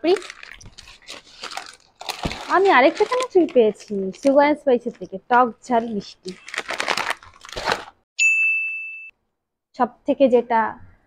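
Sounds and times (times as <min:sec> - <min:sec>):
plastic pouch crinkling: 0:00.0 - 0:05.1, 0:05.7 - 0:08.0
ding chime: 0:08.2 - 0:09.2.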